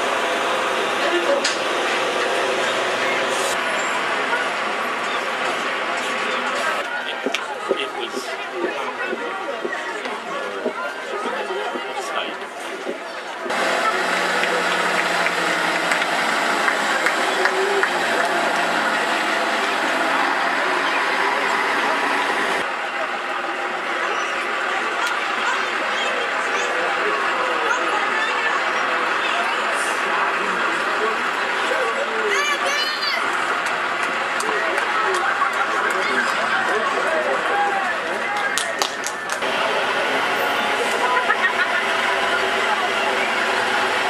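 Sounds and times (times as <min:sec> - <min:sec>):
crowd chatter: 0:00.0 - 0:44.0
lorry engine passing: 0:13.4 - 0:22.8.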